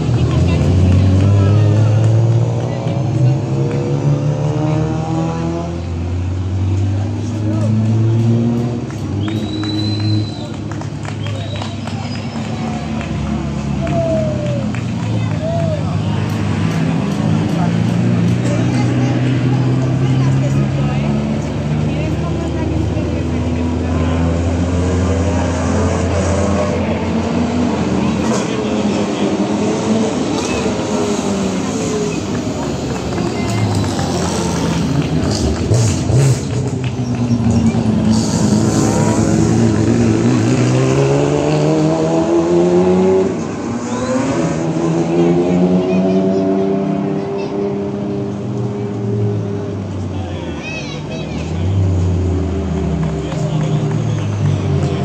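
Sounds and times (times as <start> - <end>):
rally car engines: 0.0 - 55.0.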